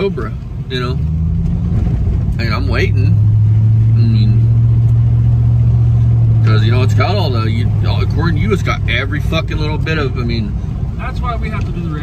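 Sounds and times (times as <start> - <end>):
engine and road noise in cab: 0.0 - 12.0.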